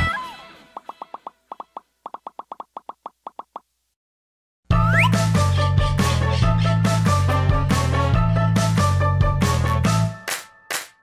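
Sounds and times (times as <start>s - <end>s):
cartoon popping plops: 0.8s - 3.7s.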